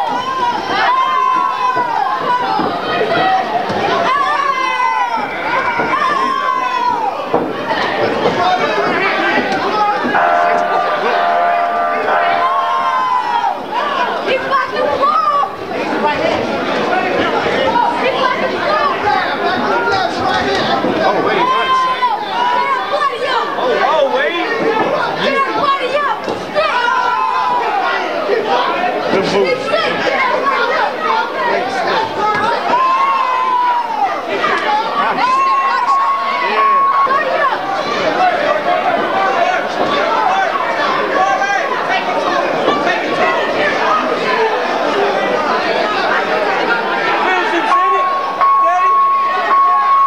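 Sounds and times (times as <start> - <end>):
spectators shouting and chattering: 0.0 - 50.0.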